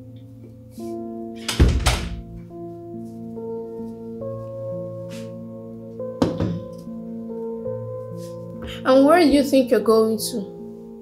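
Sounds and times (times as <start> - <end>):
background music with held notes: 0.0 - 11.0
knock: 6.2 - 6.8.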